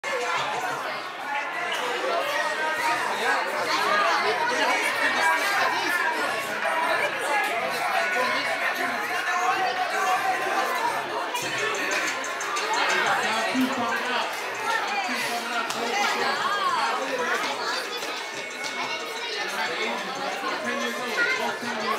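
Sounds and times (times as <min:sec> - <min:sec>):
crowd chatter: 0:00.0 - 0:21.9.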